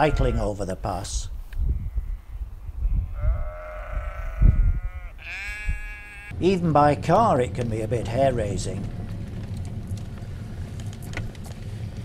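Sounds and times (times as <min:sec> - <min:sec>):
sheep bleating: 0:00.0 - 0:00.6, 0:03.1 - 0:06.4.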